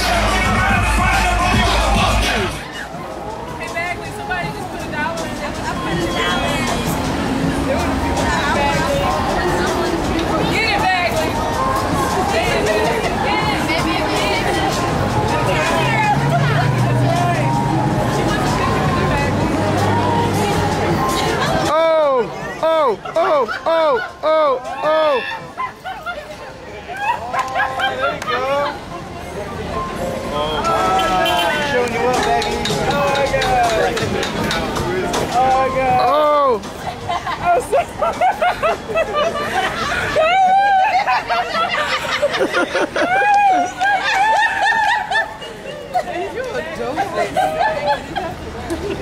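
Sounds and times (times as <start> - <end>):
excited voices: 0.0 - 29.7, 30.3 - 49.0
crowd laughing: 10.1 - 29.1, 36.4 - 49.0.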